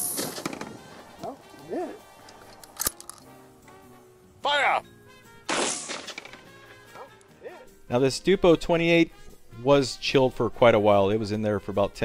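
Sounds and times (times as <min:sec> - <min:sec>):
faint background music: 0:00.0 - 0:12.0
shotgun shot: 0:05.5 - 0:06.3.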